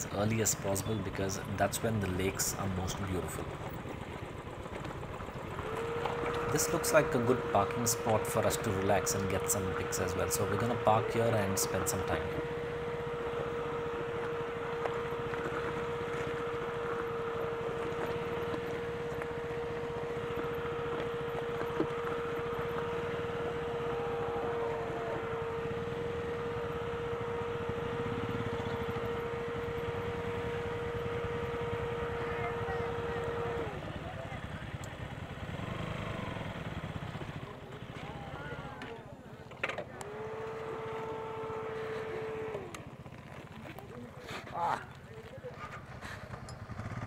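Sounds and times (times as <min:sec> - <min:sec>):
motorcycle engine running: 0:00.0 - 0:47.0
faint voices: 0:15.8 - 0:35.4, 0:37.2 - 0:46.4.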